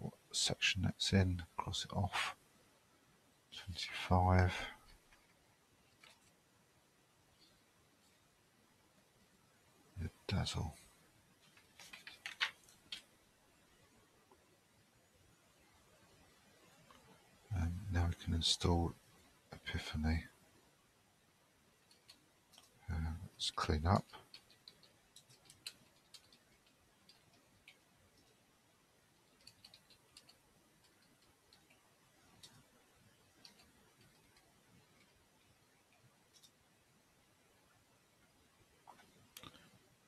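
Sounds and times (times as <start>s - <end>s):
man speaking: 0.0s - 2.4s, 3.6s - 4.8s, 10.0s - 10.8s, 17.5s - 18.9s, 19.6s - 20.3s, 22.9s - 24.2s
keyboard keys clicking: 24.3s - 28.3s, 29.3s - 31.8s.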